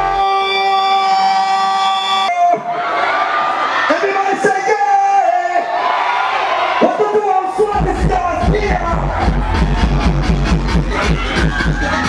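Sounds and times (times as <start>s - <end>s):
crowd cheering and shouting: 0.0s - 12.0s
backing track bass: 7.7s - 12.0s.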